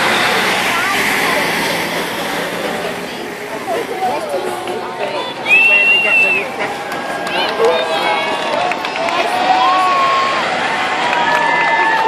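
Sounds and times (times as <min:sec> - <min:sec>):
crowd calling out and cheering: 0:00.0 - 0:12.0
steady crowd murmur: 0:00.0 - 0:12.0.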